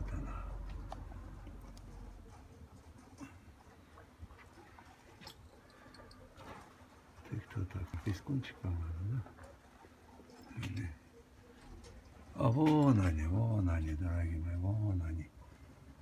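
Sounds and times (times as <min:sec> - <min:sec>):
low rumble: 0:00.0 - 0:02.2.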